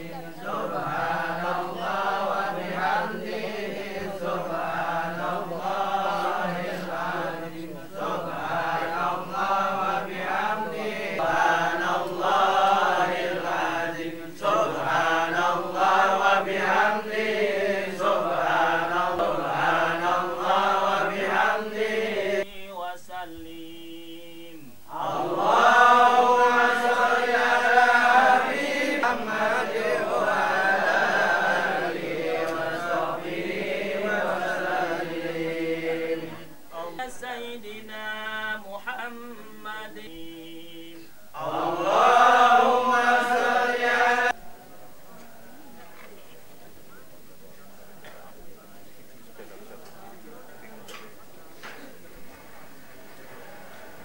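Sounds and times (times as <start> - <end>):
men chanting prayers in unison: 0.0 - 54.0.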